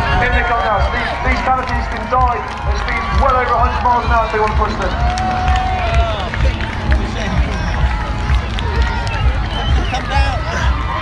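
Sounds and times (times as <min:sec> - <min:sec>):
music with bass beat over loudspeakers: 0:00.0 - 0:11.0.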